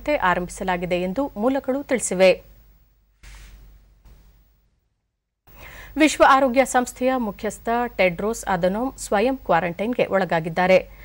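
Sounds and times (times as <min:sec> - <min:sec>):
woman's soft in-breath: 0:05.5 - 0:06.0.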